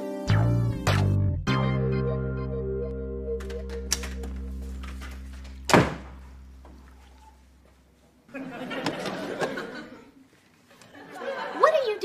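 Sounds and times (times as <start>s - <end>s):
sitcom music cue: 0.2s - 7.0s
door thudding shut: 5.7s - 6.2s.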